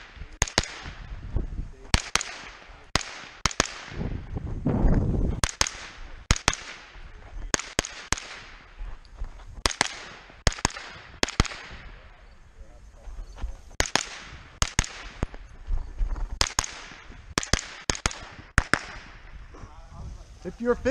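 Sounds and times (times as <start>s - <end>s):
gunshots with ringing echo: 0.0s - 1.2s, 1.9s - 4.3s, 5.3s - 8.9s, 9.6s - 12.4s, 13.7s - 15.5s, 16.4s - 19.5s.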